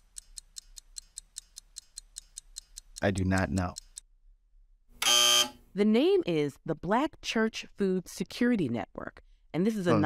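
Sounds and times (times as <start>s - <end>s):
countdown timer ticking: 0.2s - 3.9s.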